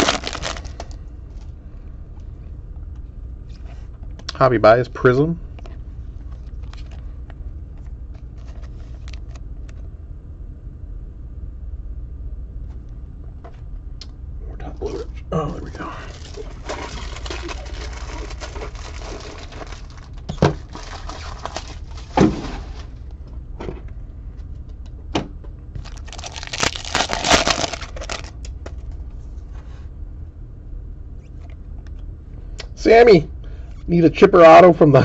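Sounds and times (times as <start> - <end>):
foil wrappers crinkling: 0.0 - 1.0, 16.0 - 23.0, 25.7 - 28.9.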